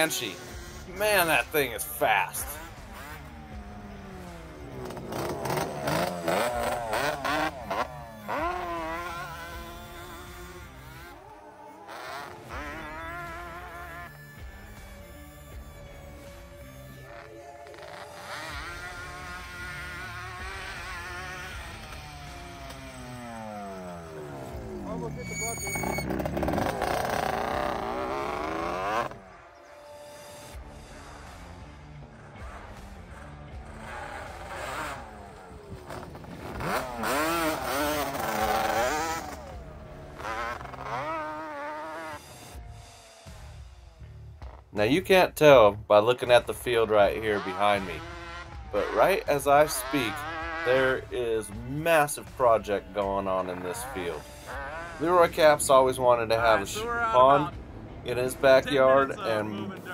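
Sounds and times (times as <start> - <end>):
atv engine revving hard: 0.0 - 29.5, 30.9 - 43.6, 46.7 - 59.9.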